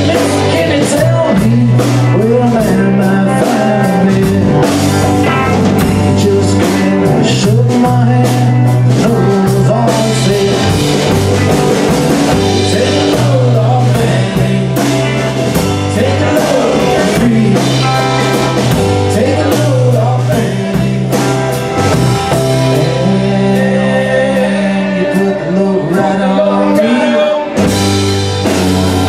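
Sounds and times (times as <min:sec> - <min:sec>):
acoustic-electric guitar: 0:00.0 - 0:29.0
bass guitar: 0:00.0 - 0:29.0
drum kit: 0:00.0 - 0:29.0
electric guitar: 0:00.0 - 0:29.0.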